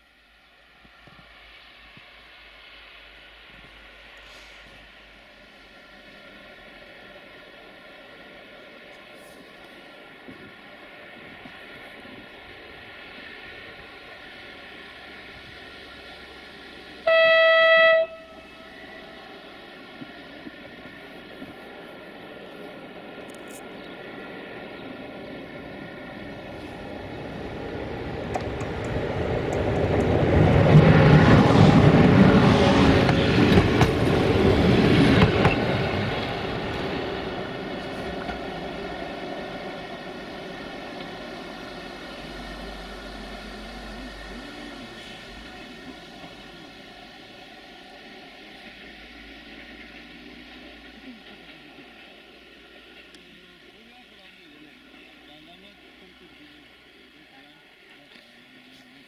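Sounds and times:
train rolling past: 0.0 - 59.0
locomotive horn blast: 17.0 - 18.8.

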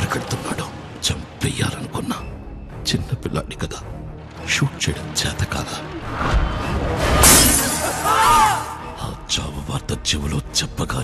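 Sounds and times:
background music: 0.0 - 11.0
shattering crash: 7.1 - 8.1.

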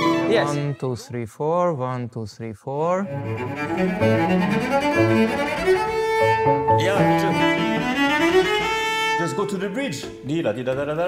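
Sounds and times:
cello bowed melody: 0.0 - 0.8, 3.0 - 10.2
piano accompaniment: 3.1 - 11.0.

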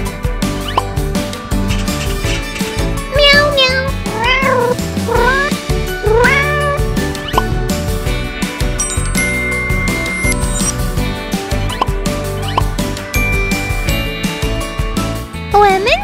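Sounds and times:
background music with steady beat: 0.0 - 15.6
cat meowing: 3.1 - 6.9.

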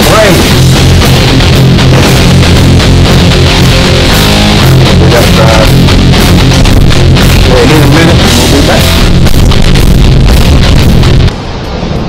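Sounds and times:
heavy metal rock music: 0.0 - 11.3.

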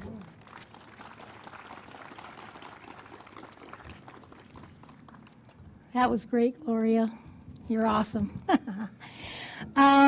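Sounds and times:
light applause: 0.0 - 5.9.

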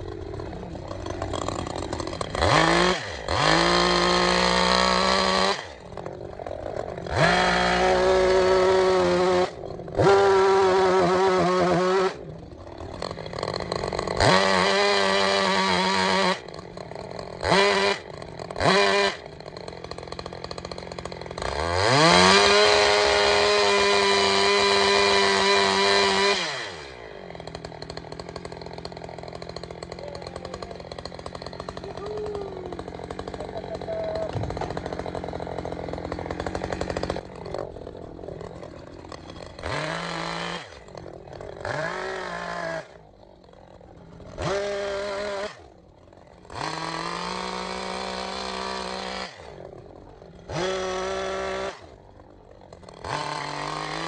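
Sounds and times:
chainsaw cutting wood: 0.0 - 54.0.

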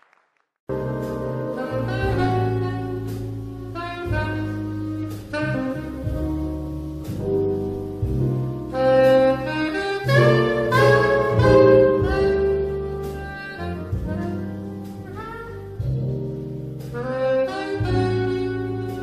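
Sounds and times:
big band soft accompaniment: 0.7 - 19.0
soprano saxophone jazz melody: 0.7 - 19.0.

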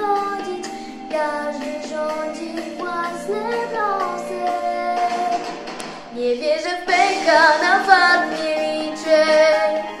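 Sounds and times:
girl singing: 0.0 - 10.0
musical accompaniment: 0.0 - 10.0.

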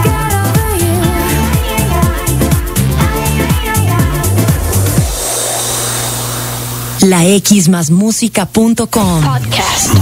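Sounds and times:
steady hiss: 2.2 - 7.5.

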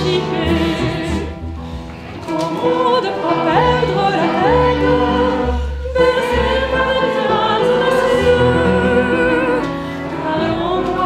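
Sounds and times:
woman singing with vibrato: 0.0 - 1.4, 2.3 - 11.0
double bass: 0.0 - 11.0
piano: 0.0 - 11.0.

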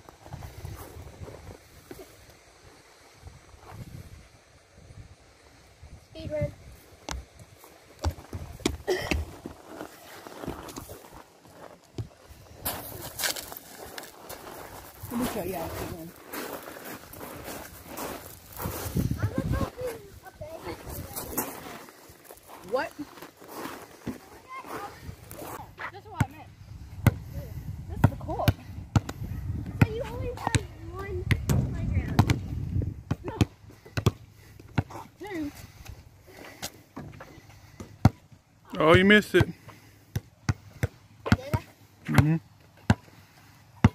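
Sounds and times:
basketballs bouncing on hard court: 29.8 - 35.0, 39.4 - 43.0.

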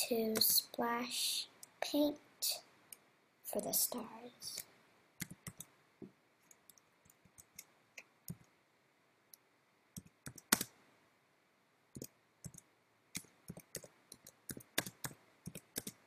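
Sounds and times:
keyboard typing: 5.2 - 5.7, 10.0 - 10.7, 12.0 - 16.0.

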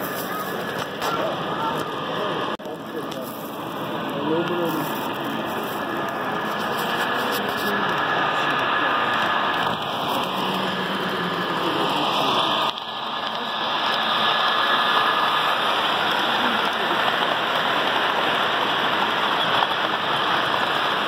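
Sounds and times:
model train wheels rushing on rails: 0.0 - 21.0.

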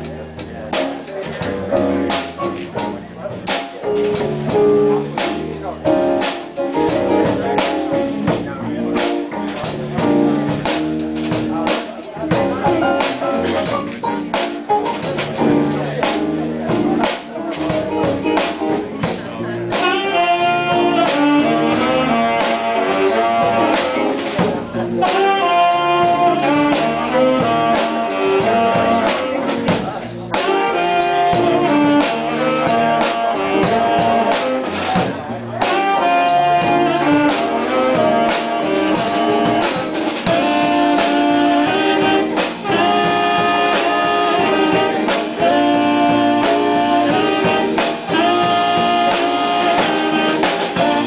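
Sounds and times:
drum kit keeping time: 0.0 - 51.0
upright bass: 0.0 - 51.0
saxophone section playing melody: 1.6 - 51.0.

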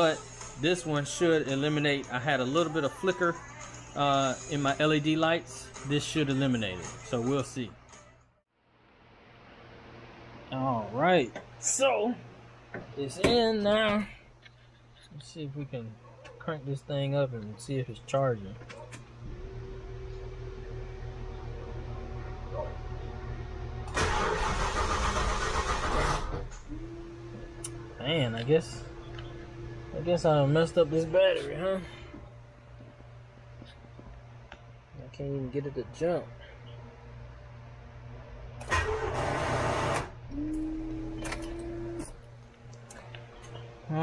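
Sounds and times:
engine cranking without starting: 23.9 - 27.0, 38.6 - 40.1
steady hum: 26.2 - 44.0.

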